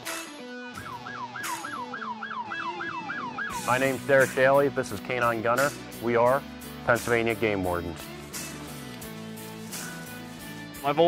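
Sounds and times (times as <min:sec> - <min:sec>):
background music: 0:00.0 - 0:11.0
electronic siren yelping: 0:00.8 - 0:03.8.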